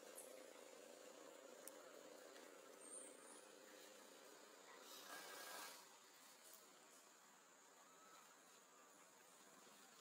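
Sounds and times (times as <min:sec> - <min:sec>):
faint high insect buzz: 0:00.0 - 0:10.0.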